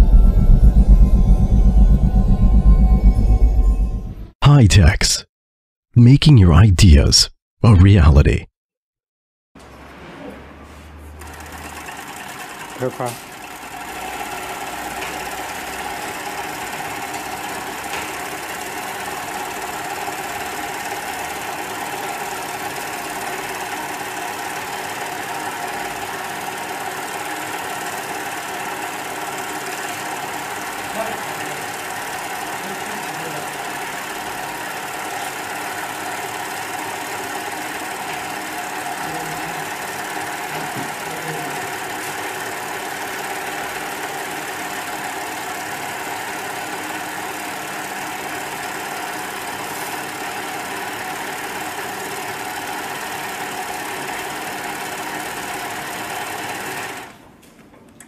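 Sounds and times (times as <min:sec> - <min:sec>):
sewing machine stitching leather: 0:39.8 - 0:57.1.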